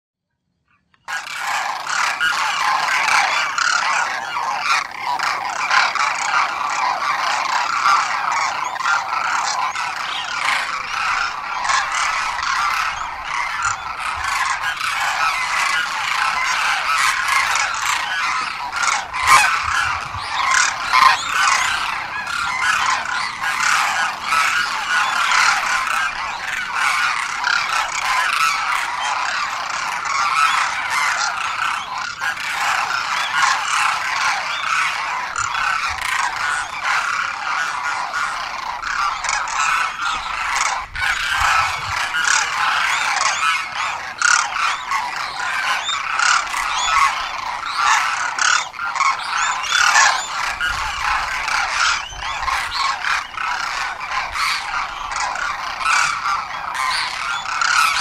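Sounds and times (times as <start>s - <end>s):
cranes calling: 0.8s - 58.0s.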